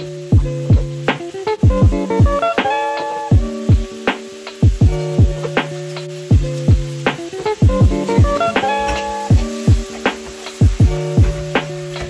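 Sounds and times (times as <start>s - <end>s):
held chord notes: 0.0s - 12.0s
deep kick drums: 0.3s - 1.0s, 1.6s - 2.4s, 3.4s - 3.9s, 4.6s - 5.5s, 6.3s - 7.0s, 7.6s - 8.5s, 9.3s - 10.0s, 10.6s - 11.8s.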